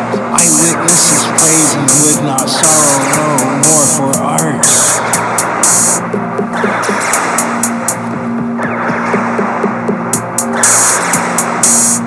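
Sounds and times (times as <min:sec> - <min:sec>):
falling synth sweeps: 0:00.0 - 0:12.0
hi-hat ticks: 0:00.1 - 0:06.2, 0:06.9 - 0:08.0, 0:09.9 - 0:12.0.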